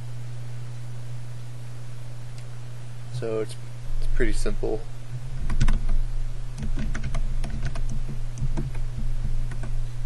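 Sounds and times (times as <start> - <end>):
steady low hum: 0.0 - 10.0
keyboard key clicks: 6.6 - 9.8.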